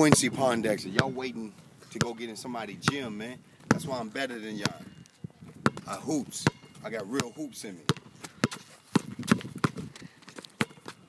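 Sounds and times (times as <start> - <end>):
basketball bouncing on asphalt: 0.0 - 1.3, 2.0 - 11.0.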